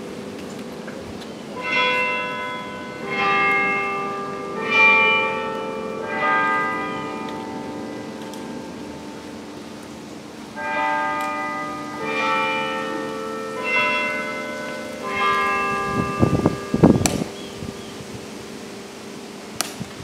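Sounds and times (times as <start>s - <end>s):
bells chiming: 1.6s - 9.8s, 10.6s - 17.9s.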